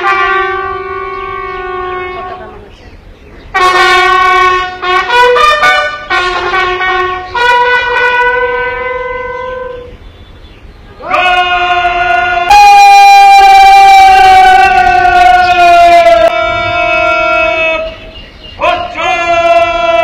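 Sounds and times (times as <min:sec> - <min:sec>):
bugle playing long notes: 0:00.0 - 0:02.7, 0:03.5 - 0:20.0.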